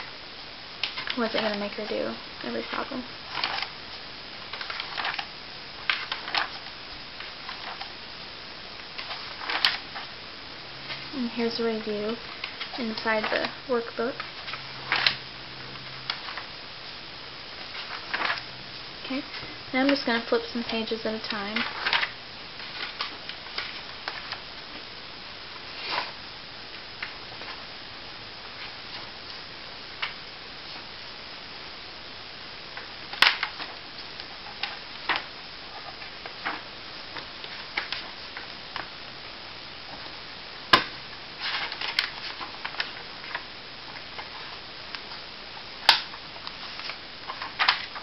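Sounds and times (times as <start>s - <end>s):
paper pages flipping: 4.5s - 5.3s, 5.9s - 7.9s, 9.0s - 10.1s, 17.6s - 18.5s, 20.7s - 24.4s, 40.7s - 45.2s, 45.8s - 48.0s.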